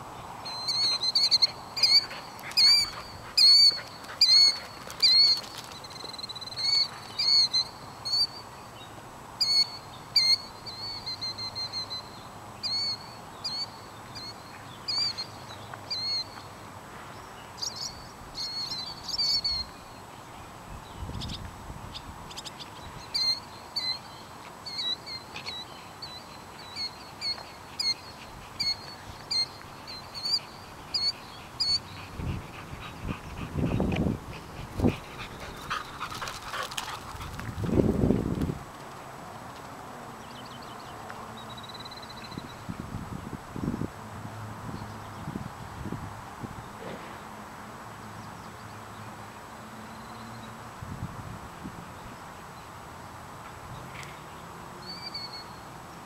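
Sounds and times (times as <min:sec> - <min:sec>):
birds calling sharply: 0:00.5 - 0:08.4.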